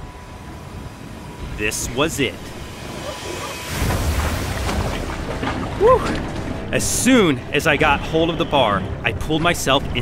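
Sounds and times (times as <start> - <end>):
rush of water: 2.6 - 7.2.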